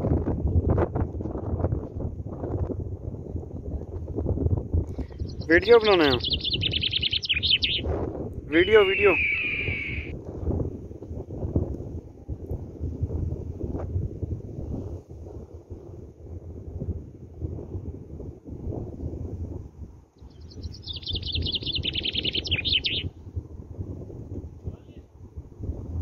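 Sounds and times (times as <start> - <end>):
wind buffeting microphone: 0.0 - 26.0
bird singing a fast trill: 5.1 - 7.9, 8.5 - 10.1, 20.2 - 23.1.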